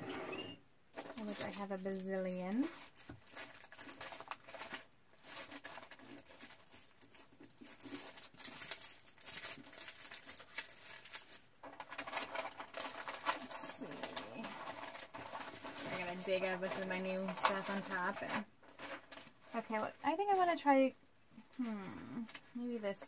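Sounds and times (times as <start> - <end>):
packets rustling and crinkling: 0.9 - 23.0.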